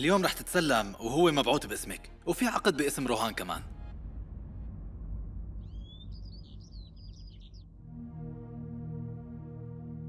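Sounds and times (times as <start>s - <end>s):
low background music: 0.0s - 10.0s
small bird twittering: 5.6s - 7.7s.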